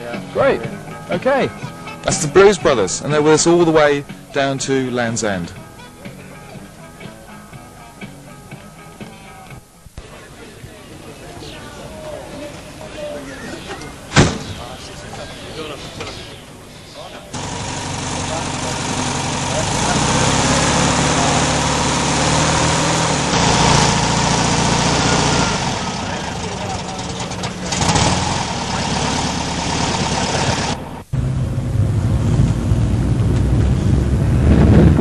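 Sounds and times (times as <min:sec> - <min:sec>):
car engines running: 0:13.8 - 0:35.0.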